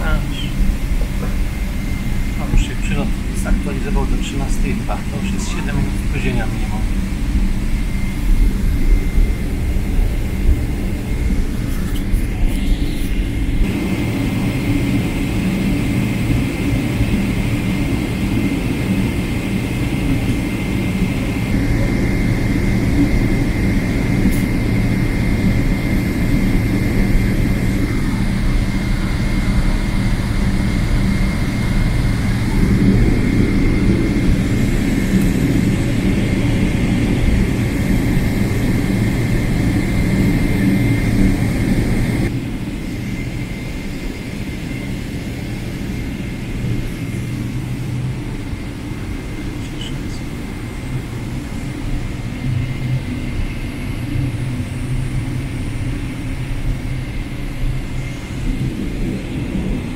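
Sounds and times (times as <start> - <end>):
jet engines rumbling with whine: 0.0 - 59.9.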